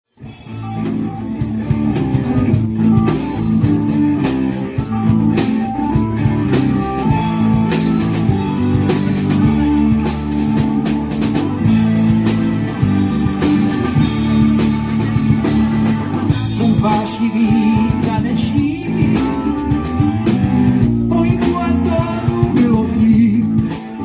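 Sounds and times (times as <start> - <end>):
bass guitar: 0.1 - 24.0
drum kit: 0.1 - 24.0
electric guitar: 0.1 - 24.0.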